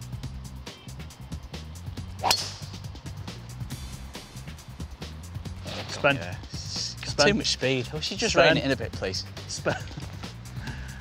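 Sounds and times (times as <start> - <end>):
music with steady beat: 0.0 - 7.5
golf club striking ball: 2.2 - 2.9.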